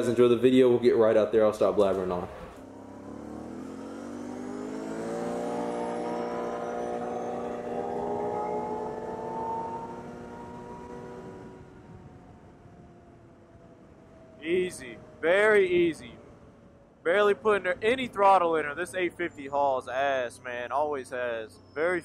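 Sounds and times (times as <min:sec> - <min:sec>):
atv engine pulling away: 0:01.0 - 0:22.0.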